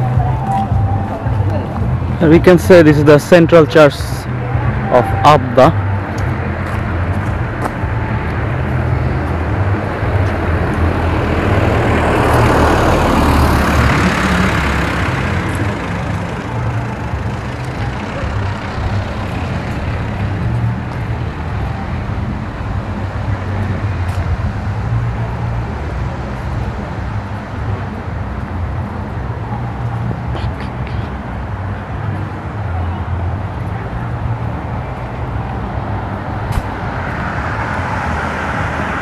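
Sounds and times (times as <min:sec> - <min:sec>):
vehicle passing by: 0:00.0 - 0:39.0.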